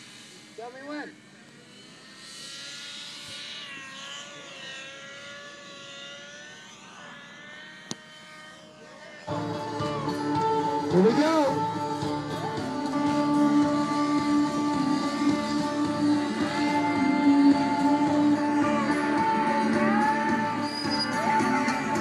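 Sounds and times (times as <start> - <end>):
rc helicopter rotor whine: 0.0 - 22.0
loud guitar music: 9.3 - 22.0.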